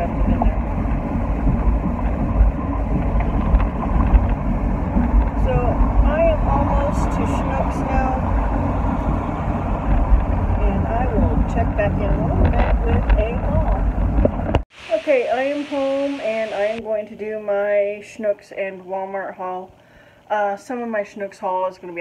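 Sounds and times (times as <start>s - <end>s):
car cabin road rumble: 0.0s - 14.7s.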